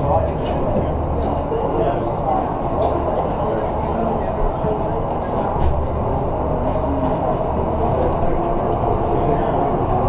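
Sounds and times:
arena rumble and hum: 0:00.0 - 0:10.0
spectator chatter: 0:00.0 - 0:10.0.

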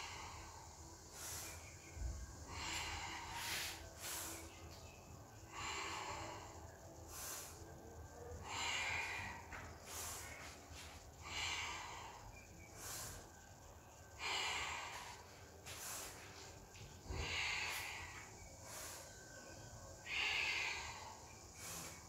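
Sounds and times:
woman breathing in and out: 0:00.0 - 0:22.0.

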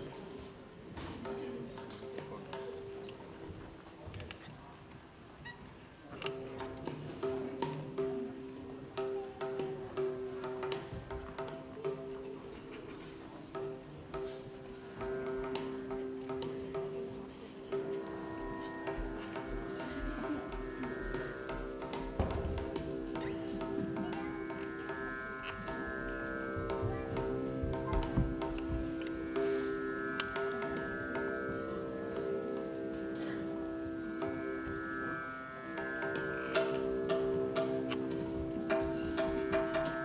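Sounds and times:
tablas struck softly: 0:00.0 - 0:04.2, 0:06.1 - 0:40.0.

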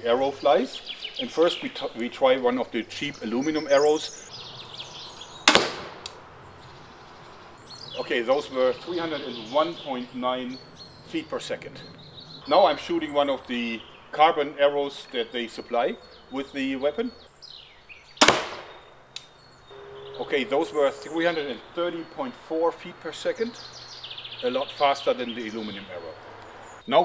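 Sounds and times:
faint bird chirps: 0:15.0 - 0:27.0.

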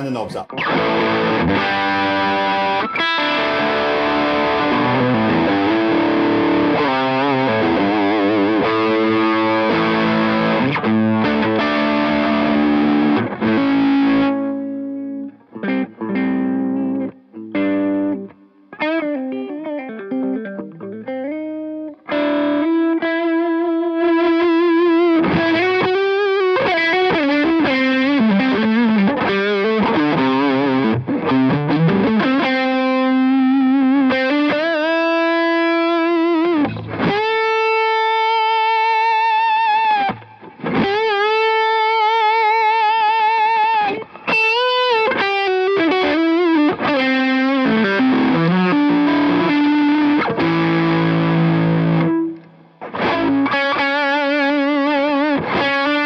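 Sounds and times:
distorted electric guitar lead: 0:00.0 - 0:56.0.

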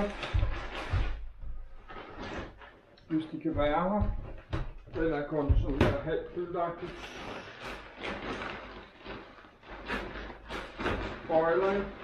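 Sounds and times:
dull thumps: 0:00.0 - 0:11.8
plastic bag rustling: 0:00.0 - 0:12.0.

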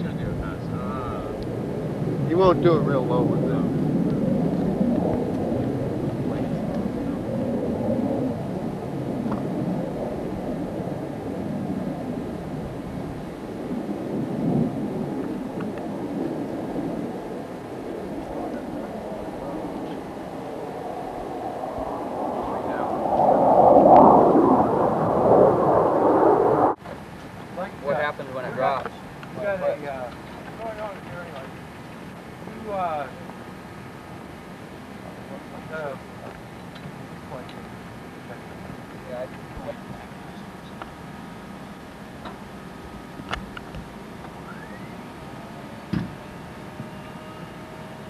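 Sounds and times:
jet engine roar: 0:00.0 - 0:27.0.

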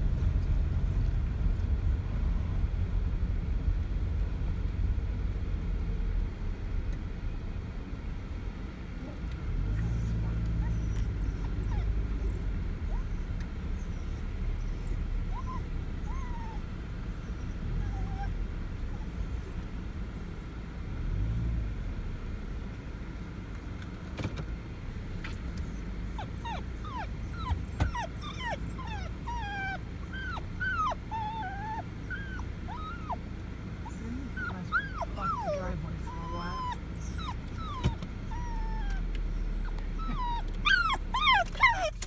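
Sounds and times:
car road noise: 0:00.0 - 0:42.0
dog whining and yipping: 0:09.8 - 0:19.6, 0:25.6 - 0:42.0.

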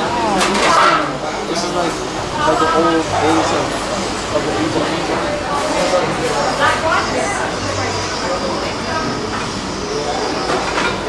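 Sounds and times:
busy dining hall noise: 0:00.0 - 0:11.0.

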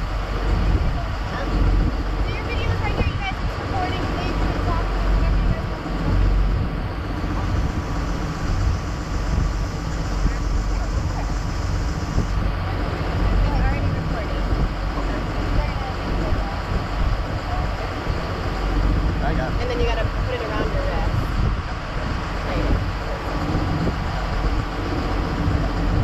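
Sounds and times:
boat engine rumble: 0:00.0 - 0:26.0.

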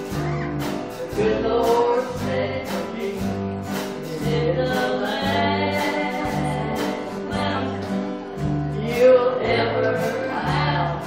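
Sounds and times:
bass line: 0:00.0 - 0:11.0
gospel singing: 0:00.9 - 0:11.0.

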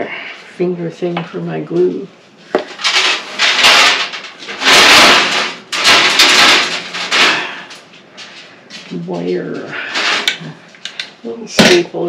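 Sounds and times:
rustling and scraping of supplies: 0:01.3 - 0:11.8.

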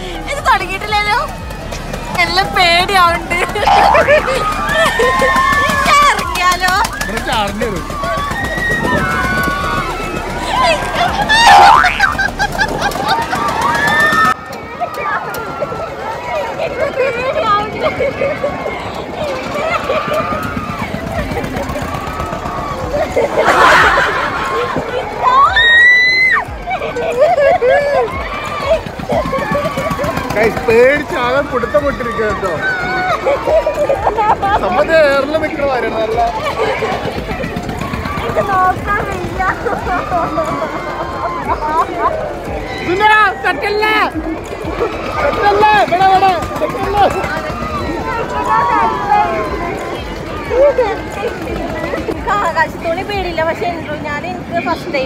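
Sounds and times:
people talking and calling out: 0:00.0 - 0:55.0
woman laughing: 0:03.4 - 0:05.5, 0:33.2 - 0:34.7.

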